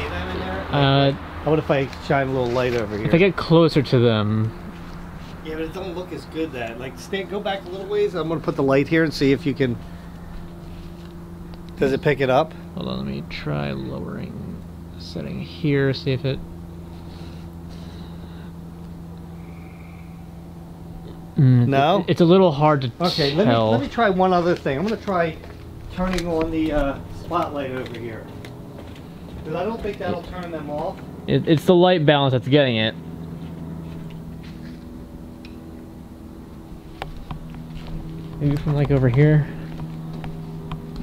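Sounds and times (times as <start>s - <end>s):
low mechanical hum: 0.0s - 41.0s.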